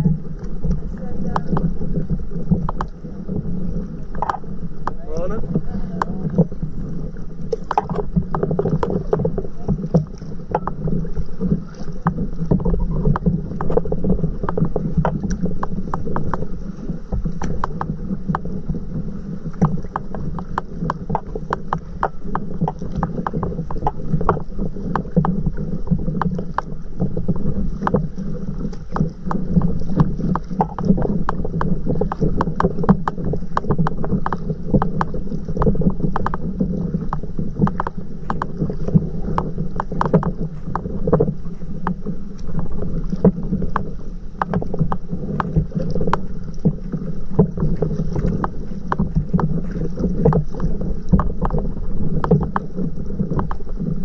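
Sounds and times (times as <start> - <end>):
water splashing against paddleboard: 0.0 - 54.0
wind rumbling on microphone: 0.0 - 54.0.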